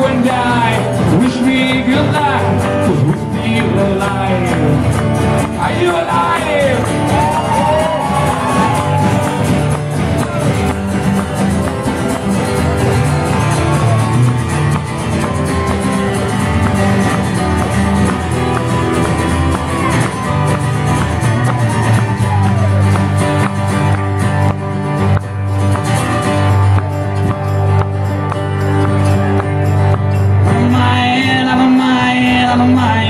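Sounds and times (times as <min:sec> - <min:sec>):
strummed acoustic guitars: 0:00.0 - 0:33.0.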